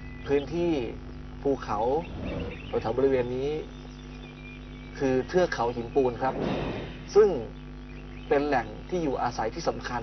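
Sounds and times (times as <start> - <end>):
steady low hum: 0.0 - 10.0
man speaking: 0.4 - 3.7.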